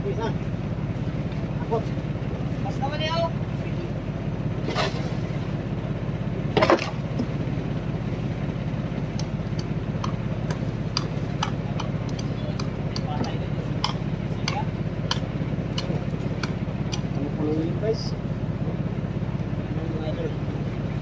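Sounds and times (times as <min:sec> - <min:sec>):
boat engine droning: 0:00.0 - 0:21.0.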